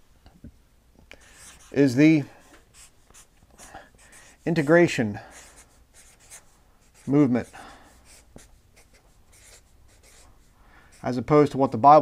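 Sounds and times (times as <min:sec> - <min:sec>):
marker pen writing on paper: 0:01.2 - 0:01.8, 0:02.7 - 0:10.3.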